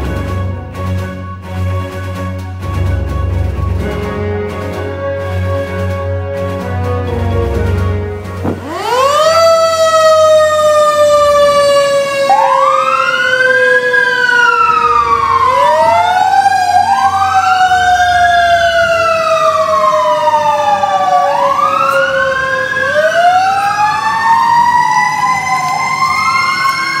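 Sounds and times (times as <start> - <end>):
truck engine rumbling: 0.0 - 27.0
wailing siren: 3.8 - 27.0
long sliding siren tone: 6.9 - 27.0.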